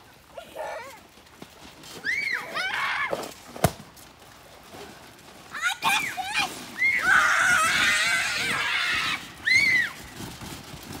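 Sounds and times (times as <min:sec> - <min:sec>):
children screaming: 0:01.9 - 0:03.4, 0:05.5 - 0:10.2.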